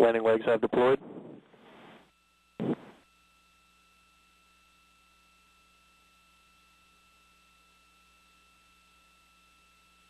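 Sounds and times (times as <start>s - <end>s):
radio hiss: 0.0s - 2.0s, 2.6s - 3.0s
short clipped radio burst: 0.6s - 2.0s, 2.6s - 3.0s.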